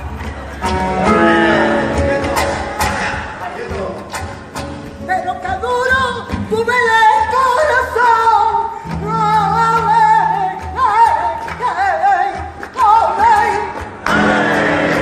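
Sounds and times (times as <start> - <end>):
flamenco guitar: 0.0 - 15.0
woman singing flamenco: 4.1 - 15.0
hand-clapping: 9.5 - 15.0.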